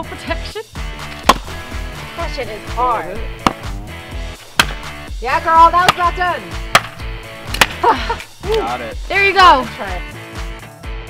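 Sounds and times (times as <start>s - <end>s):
background music with steady beat: 0.0s - 11.0s
axe striking log: 1.0s - 2.0s, 3.3s - 8.6s.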